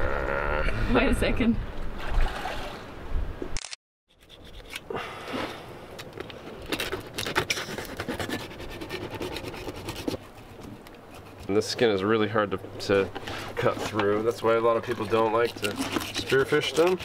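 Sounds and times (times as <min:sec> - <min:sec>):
wind rumbling on microphone: 0:00.0 - 0:03.6
knife scraping fish skin: 0:06.8 - 0:11.5, 0:14.9 - 0:17.0.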